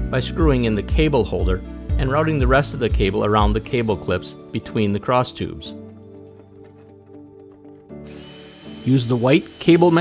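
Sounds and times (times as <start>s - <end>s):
soft background music: 0.0s - 10.0s
drill motor whine: 7.9s - 10.0s
drill hiss: 8.0s - 10.0s.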